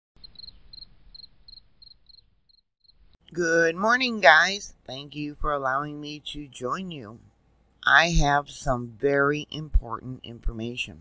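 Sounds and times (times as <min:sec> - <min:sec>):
insect chirping: 0:00.2 - 0:03.0.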